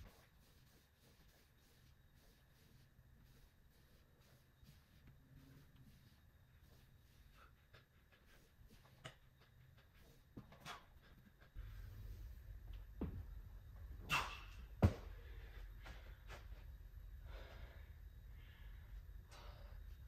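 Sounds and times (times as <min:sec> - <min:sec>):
knocks on padded gym mat: 0:14.8 - 0:15.1
heavy breathing: 0:17.2 - 0:20.0.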